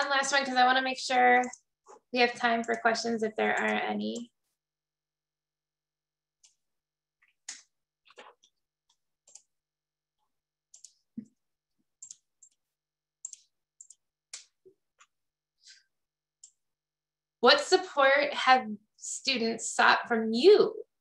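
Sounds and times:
keyboard and mouse clicking: 0:01.3 - 0:04.3, 0:09.2 - 0:09.5, 0:10.7 - 0:11.3, 0:12.0 - 0:12.6, 0:13.2 - 0:15.1.

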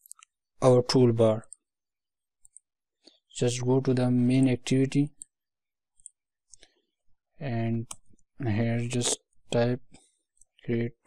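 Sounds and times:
computer mouse clicks: 0:02.4 - 0:02.7, 0:07.8 - 0:08.2.

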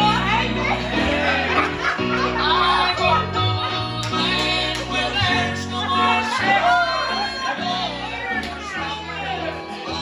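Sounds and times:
electric bass: 0:00.0 - 0:10.0
live gospel music: 0:00.0 - 0:10.0
voices singing and calling out: 0:00.0 - 0:10.0.

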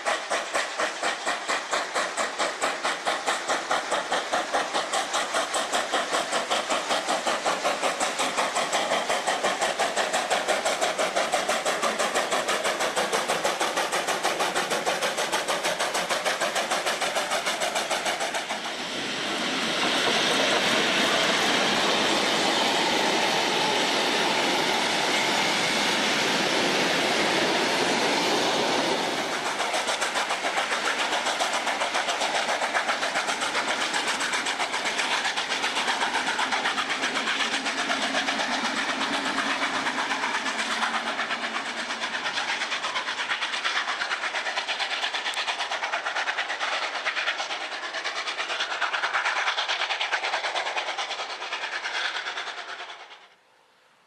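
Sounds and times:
train running: 0:00.0 - 0:53.7.

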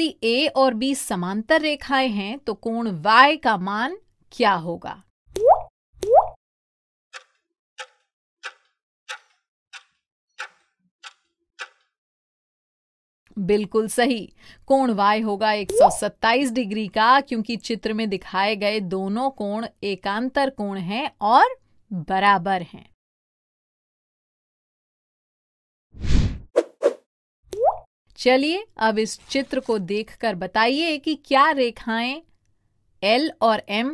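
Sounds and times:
stopwatch ticking: 0:07.1 - 0:11.9
quick pops: 0:07.2 - 0:12.0
transition whoosh: 0:26.0 - 0:26.5.

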